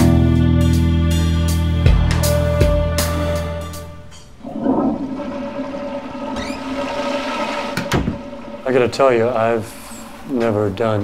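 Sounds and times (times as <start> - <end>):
guitar music: 0.0 - 4.2
running water: 4.2 - 11.0.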